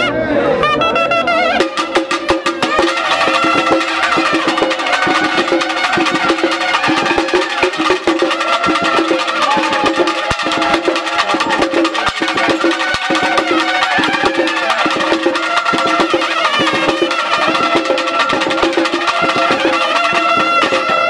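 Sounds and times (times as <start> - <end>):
trumpets playing melody: 0.0 - 21.0
fast drumming: 1.6 - 21.0.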